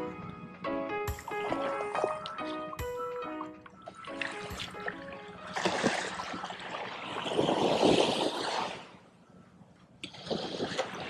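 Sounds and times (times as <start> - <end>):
background music: 0.0 - 6.5.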